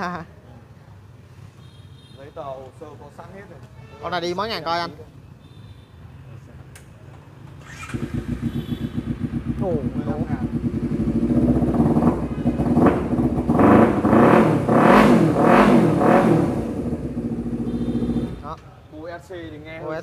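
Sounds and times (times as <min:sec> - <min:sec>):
motorcycle engine idling and revving: 0:07.6 - 0:18.5.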